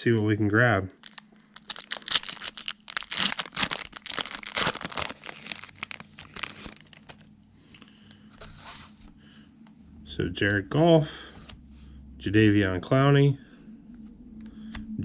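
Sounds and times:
cards rustling: 1.0 - 7.3
foil card pack tearing and crumpling: 1.0 - 7.3.

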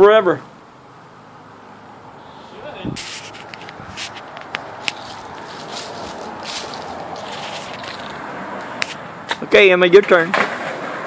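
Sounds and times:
dry leaves crackling underfoot: 2.9 - 9.2.

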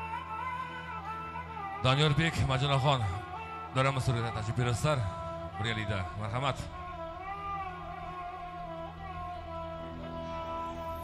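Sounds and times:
electronic keyboard music: 0.0 - 11.0.

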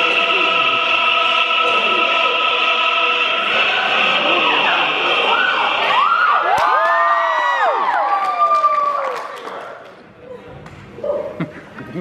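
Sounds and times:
audience cheering and whooping: 4.4 - 9.7.

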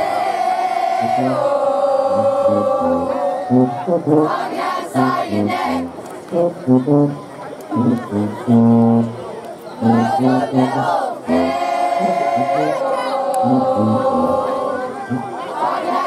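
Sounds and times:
crowd voices: 0.0 - 16.0
brass band playing: 1.0 - 16.0.

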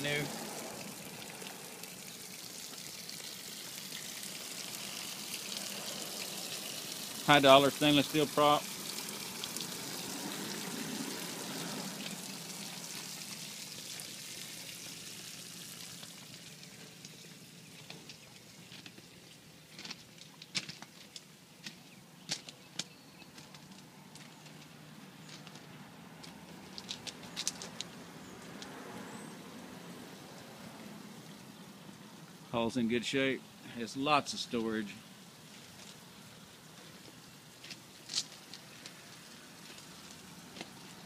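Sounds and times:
water running from a hose: 0.0 - 19.1, 34.2 - 41.0.

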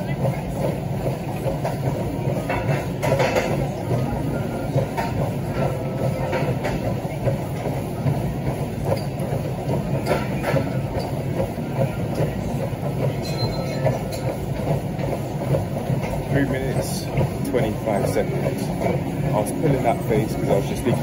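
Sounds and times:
footsteps on treadmill: 0.0 - 21.0
treadmill motor hum: 0.0 - 21.0.

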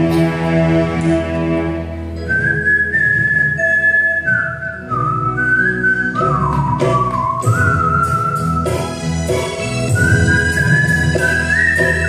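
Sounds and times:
live band accompaniment: 0.0 - 12.0
man whistling a melody: 2.2 - 9.1, 9.8 - 12.0.

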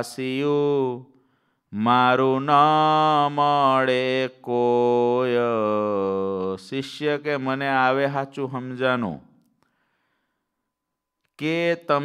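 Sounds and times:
faint breath out: 9.6 - 10.5.

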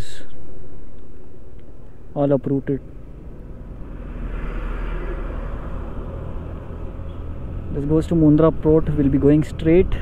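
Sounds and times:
road noise hiss: 0.0 - 10.0.

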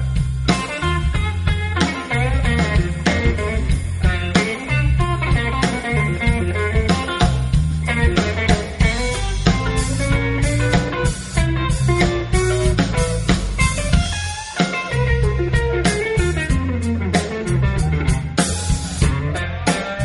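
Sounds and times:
blues-rock band playing: 0.0 - 20.0
lead electric guitar with bent notes: 0.0 - 20.0.

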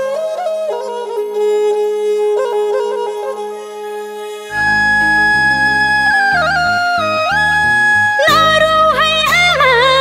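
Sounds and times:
person singing ornamented melody: 4.5 - 10.0.

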